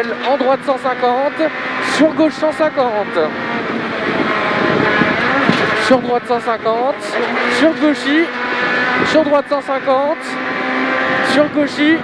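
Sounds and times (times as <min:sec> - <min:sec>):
car engine running hard: 0:00.0 - 0:12.0
tyre and road noise: 0:00.0 - 0:12.0.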